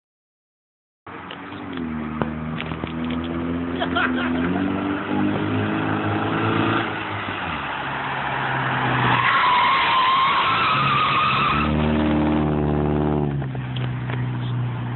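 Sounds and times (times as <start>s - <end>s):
tyres squealing: 8.0s - 12.2s
car engine running: 11.7s - 14.9s.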